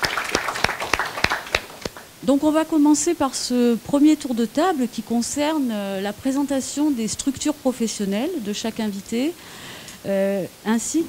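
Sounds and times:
audience applauding: 0.0 - 2.1
strong single claps: 0.0 - 2.1.

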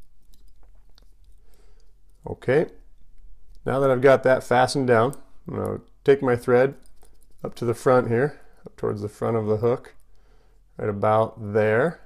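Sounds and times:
thread winding clicks and crackles: 0.0 - 2.3.

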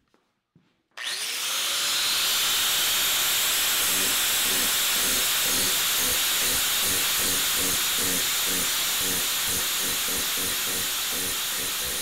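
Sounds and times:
power sander hissing: 1.0 - 12.0.

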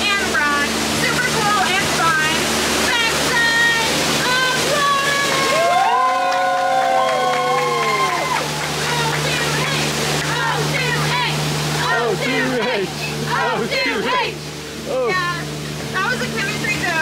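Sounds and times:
voices: 0.0 - 17.0
waterfall rushing: 0.0 - 17.0.

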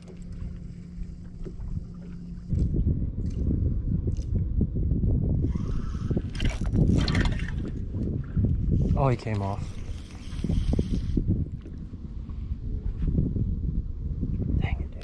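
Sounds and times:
water lapping against boat hull: 0.0 - 4.6, 5.4 - 12.4
rough rumble: 0.0 - 15.0
wind on microphone: 0.0 - 15.0.

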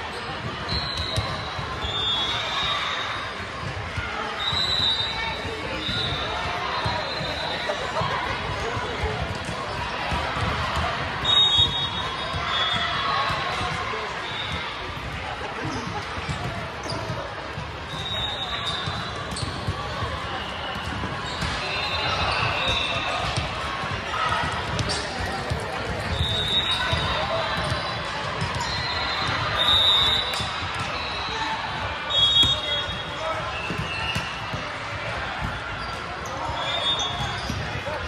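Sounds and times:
hubbub of many voices: 0.0 - 38.0.

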